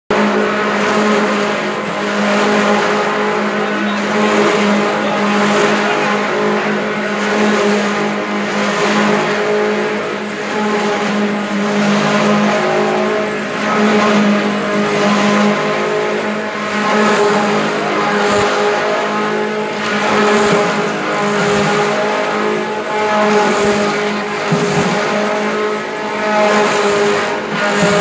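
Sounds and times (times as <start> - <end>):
constant hum: 0.1 - 28.0
loud machine drone: 0.1 - 28.0.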